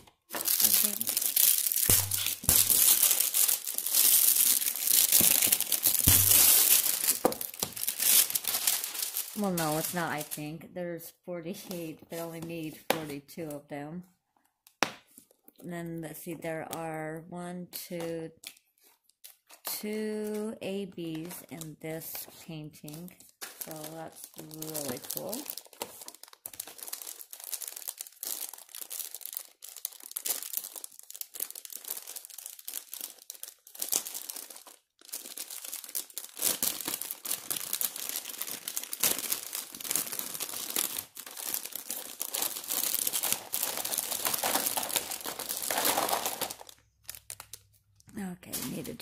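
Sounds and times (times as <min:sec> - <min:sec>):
plastic wrapping crinkling: 0:00.0 - 0:10.5, 0:18.4 - 0:49.0.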